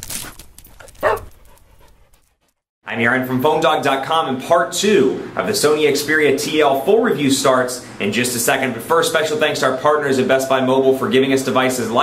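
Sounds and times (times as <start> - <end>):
dog bark sound effect: 1.0 - 1.3.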